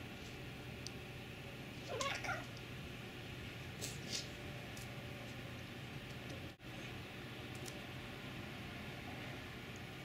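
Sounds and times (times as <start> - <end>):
cat meowing: 1.9 - 2.5.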